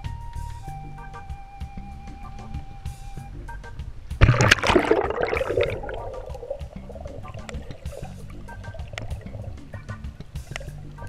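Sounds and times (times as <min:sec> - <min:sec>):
background music with beat: 0:00.0 - 0:11.0
loud splash into water: 0:04.2 - 0:09.4
bubbling gurgle: 0:04.2 - 0:10.8.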